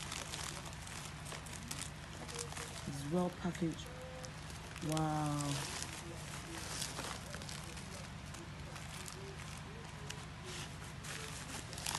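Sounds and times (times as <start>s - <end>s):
bubble wrap crinkling: 0.0s - 11.9s.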